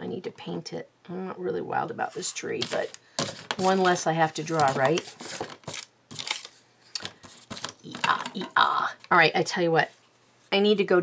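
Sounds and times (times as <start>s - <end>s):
paper rustling and crinkling: 2.6s - 8.2s.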